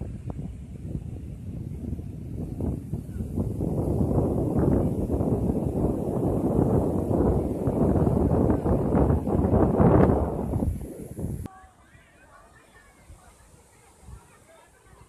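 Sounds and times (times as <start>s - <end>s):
rough surf roaring: 0.0s - 11.5s
wind buffeting microphone: 0.0s - 11.5s.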